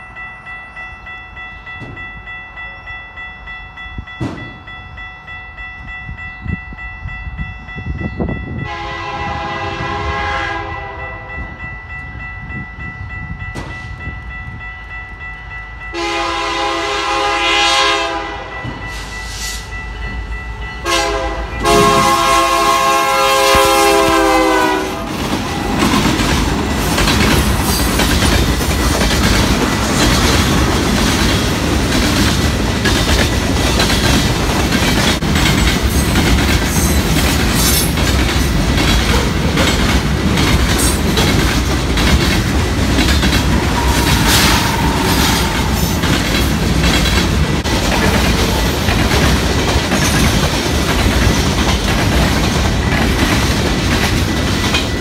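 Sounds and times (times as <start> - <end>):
train rumble: 0.0 - 55.0
train horn chord: 8.6 - 11.6, 15.9 - 19.6, 20.8 - 25.2, 43.6 - 46.0
wheels clacking over rail joints: 23.5 - 55.0.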